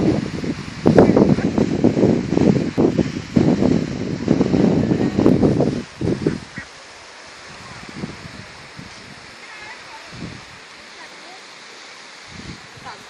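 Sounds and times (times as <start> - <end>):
wind buffeting microphone: 0.0 - 11.0, 12.1 - 13.0.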